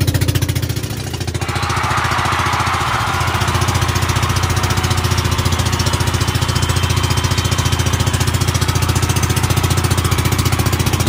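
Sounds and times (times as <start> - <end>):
small boat engine chugging: 0.0 - 11.0.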